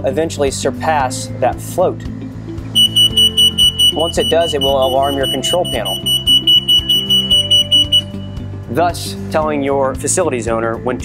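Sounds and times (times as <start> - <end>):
high-pitched alarm buzzer: 2.8 - 8.1.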